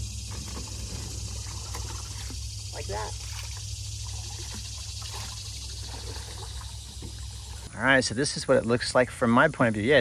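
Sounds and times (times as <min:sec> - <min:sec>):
paddle strokes lapping in water: 0:03.2 - 0:07.7.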